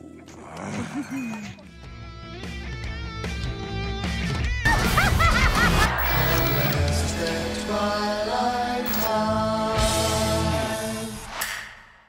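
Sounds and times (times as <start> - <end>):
background music: 0.0 - 11.6
person laughing: 4.7 - 6.6.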